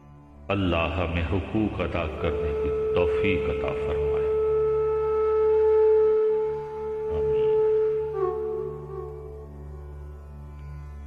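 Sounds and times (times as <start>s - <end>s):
low drone: 0.0s - 10.4s.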